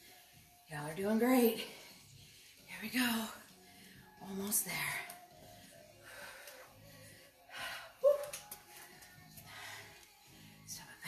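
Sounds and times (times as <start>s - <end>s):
faint background music with beat: 0.0s - 11.0s.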